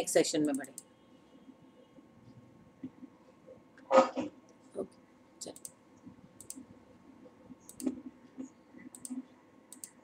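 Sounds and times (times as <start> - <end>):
faint computer mouse clicks: 6.4 - 6.6, 7.7 - 8.0, 8.8 - 10.0.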